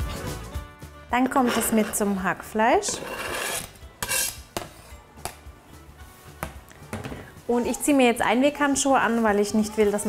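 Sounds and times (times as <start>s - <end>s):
knife scraping cutting board: 1.2s - 2.2s, 2.8s - 4.9s.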